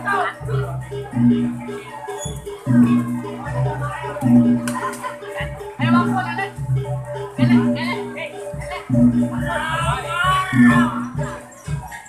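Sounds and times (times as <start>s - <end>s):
deep percussion strokes: 0.0s - 12.0s
high wavering melody: 0.0s - 12.0s.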